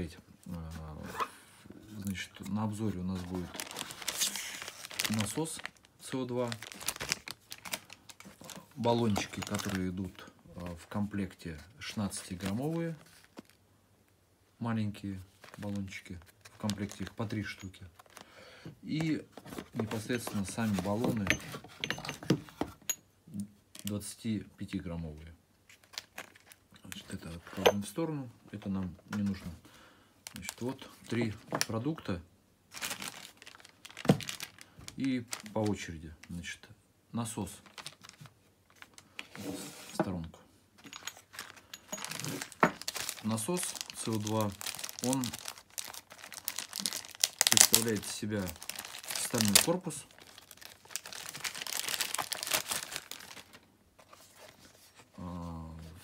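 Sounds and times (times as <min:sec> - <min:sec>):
plastic film crinkling: 0:02.0 - 0:10.3, 0:11.9 - 0:13.6, 0:15.3 - 0:18.3, 0:25.7 - 0:27.4, 0:30.2 - 0:32.0, 0:32.7 - 0:36.5, 0:37.4 - 0:39.4, 0:40.8 - 0:54.8
metal cartridges clinking: 0:21.2 - 0:23.0, 0:40.8 - 0:42.7.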